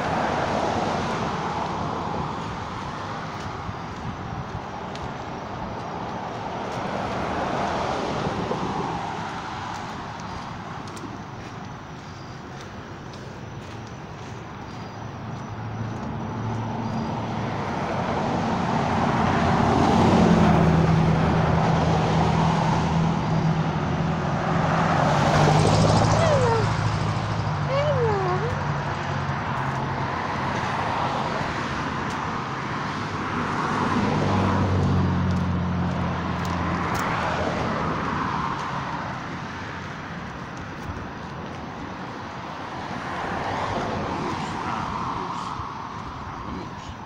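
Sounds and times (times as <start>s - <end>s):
low engine hum: 0.0s - 47.0s
vehicles passing on road: 0.0s - 47.0s.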